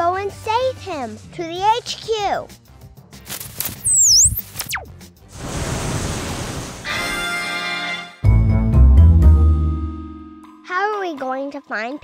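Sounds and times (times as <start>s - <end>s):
cartoon whistling glide: 3.8s - 4.9s.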